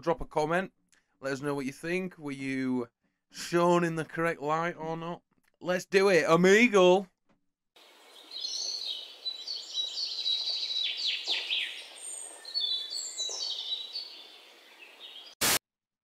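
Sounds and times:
birds chirping and singing: 7.8s - 15.4s.

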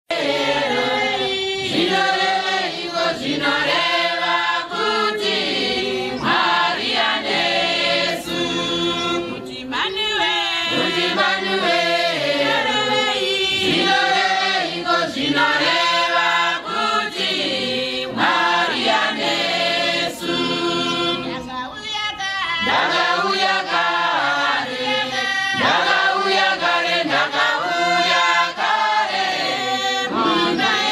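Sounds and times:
congregation singing a hymn: 0.1s - 30.9s.

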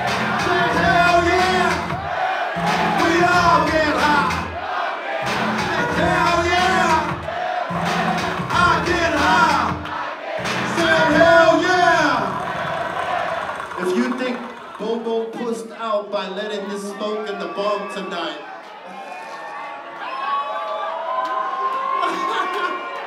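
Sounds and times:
hip-hop over loudspeakers: 0.0s - 4.6s, 5.3s - 16.8s
crowd shouting: 0.0s - 15.1s.

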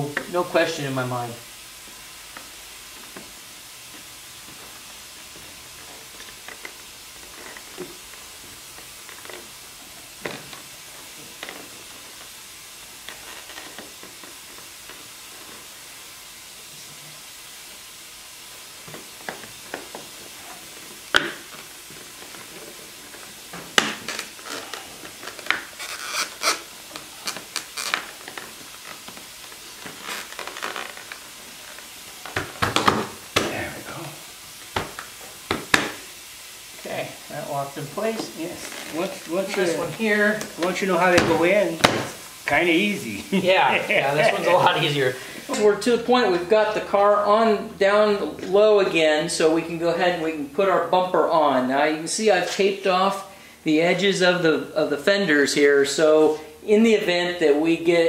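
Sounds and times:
steady background hiss: 0.0s - 58.0s.

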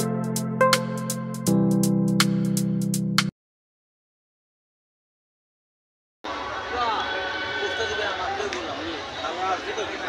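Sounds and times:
crowd chattering: 6.3s - 10.0s.

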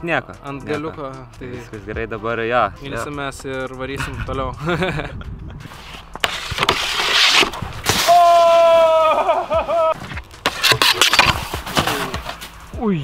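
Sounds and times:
snowboard sliding over snow: 5.6s - 12.5s
person shouting: 8.0s - 9.9s.

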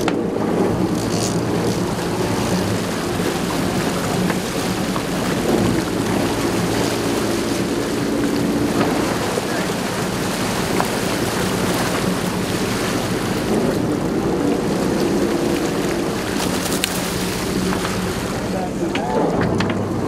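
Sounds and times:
boat engines droning: 0.0s - 20.0s
water splashing along hull: 0.0s - 20.0s.

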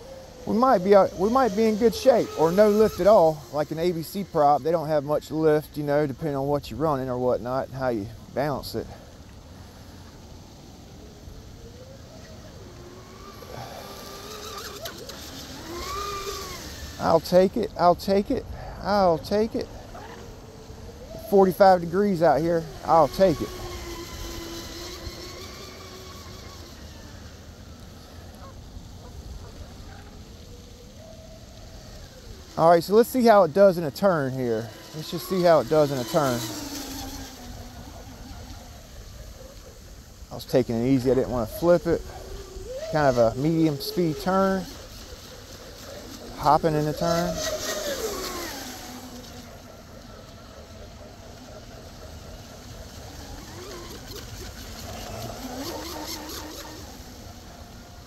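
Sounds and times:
electric motor whining: 0.0s - 58.0s.

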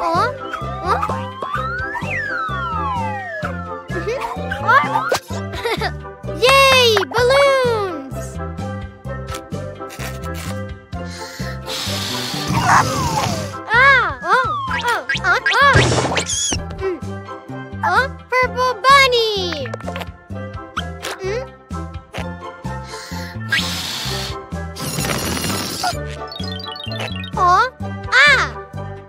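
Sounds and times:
children's background music: 0.0s - 29.0s
balloon air hiss: 11.3s - 13.6s, 23.5s - 26.0s
rushing hiss of air: 11.7s - 12.5s.

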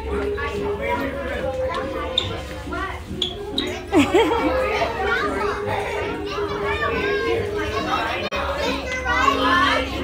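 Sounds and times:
children talking and calling out: 0.0s - 10.0s.

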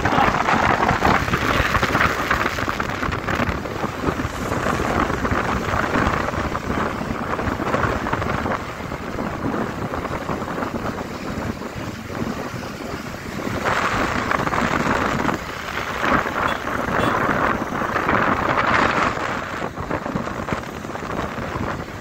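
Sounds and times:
motorcycle road noise: 0.0s - 22.0s
wind buffeting microphone: 0.0s - 22.0s.

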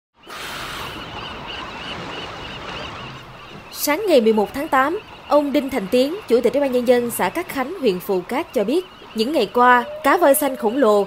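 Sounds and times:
sea and wind rushing: 0.2s - 11.0s
seabirds calling: 0.2s - 11.0s.

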